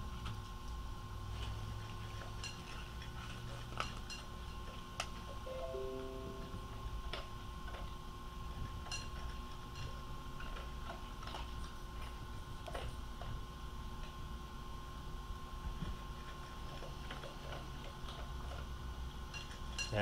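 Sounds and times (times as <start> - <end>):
low hum: 5.5 - 7.4.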